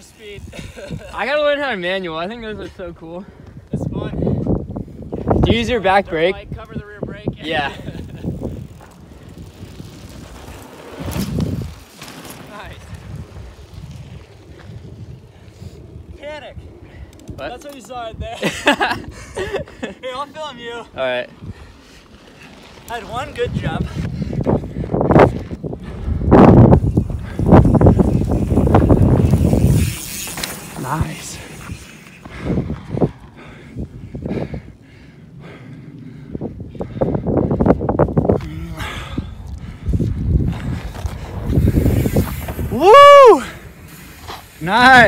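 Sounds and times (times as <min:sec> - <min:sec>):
bike tyres rolling on dirt: 0:00.0 - 0:45.0
wind buffeting microphone: 0:00.0 - 0:45.0.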